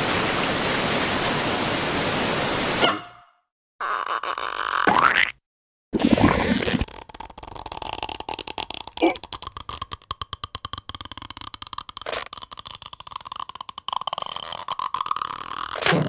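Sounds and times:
cartoon slurping sound effect: 0:06.0 - 0:16.0
short squeaky vocal noises: 0:09.0 - 0:09.3, 0:14.3 - 0:16.0.

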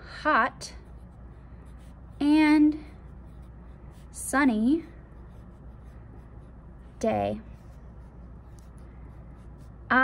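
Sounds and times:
pen scratching on paper: 0:00.8 - 0:10.0.

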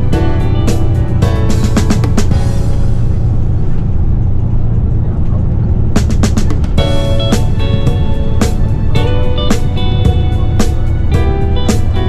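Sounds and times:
coach engine and road rumble: 0:00.0 - 0:12.0.

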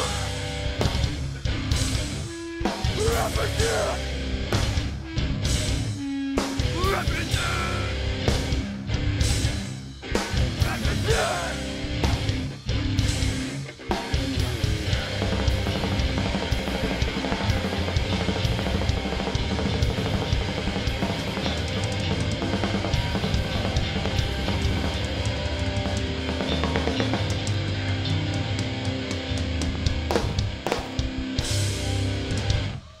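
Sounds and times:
heavy bass drum: 0:00.0 - 0:02.2, 0:06.6 - 0:13.5, 0:14.2 - 0:32.7
live hardcore band playing: 0:00.0 - 0:33.0.

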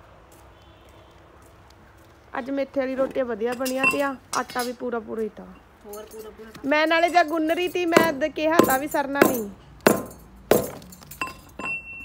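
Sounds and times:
metal pipe ringing on concrete: 0:05.9 - 0:12.0
metal pipe knocking dung cakes: 0:07.0 - 0:11.8.

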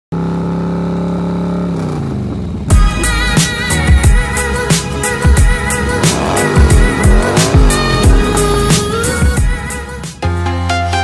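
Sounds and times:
motorcycle engine running: 0:00.1 - 0:10.0.

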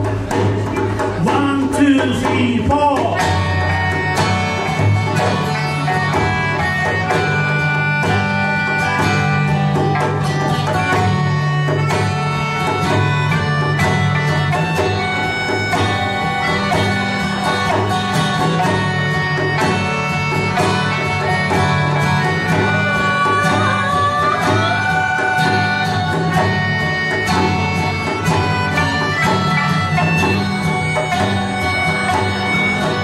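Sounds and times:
acoustic band playing: 0:00.0 - 0:33.0
strummed acoustic guitar: 0:00.0 - 0:33.0
melodica melody: 0:01.2 - 0:33.0.

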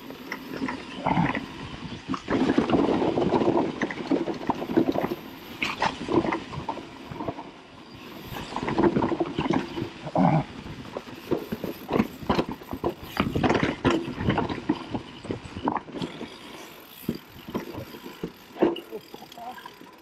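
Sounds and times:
bike tyres rolling over leaves: 0:00.0 - 0:20.0
bike rattles and knocks: 0:01.9 - 0:10.1, 0:10.7 - 0:20.0.

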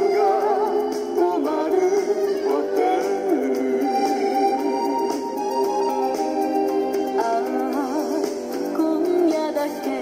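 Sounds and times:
man and woman singing duet: 0:00.0 - 0:05.6, 0:07.0 - 0:10.0
backing band track: 0:00.0 - 0:10.0.

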